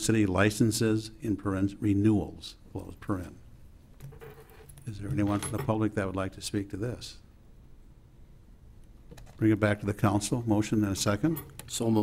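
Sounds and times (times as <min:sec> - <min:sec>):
man talking: 0:00.0 - 0:03.5, 0:04.8 - 0:07.3, 0:09.4 - 0:12.0
faint handling noise: 0:02.8 - 0:05.8.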